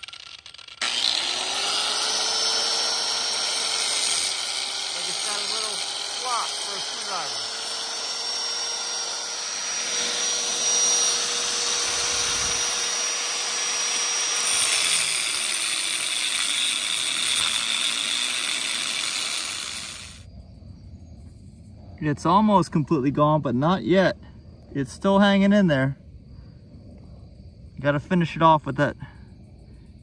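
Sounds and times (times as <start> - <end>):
angle grinder cutting steel: 0.0 - 20.2.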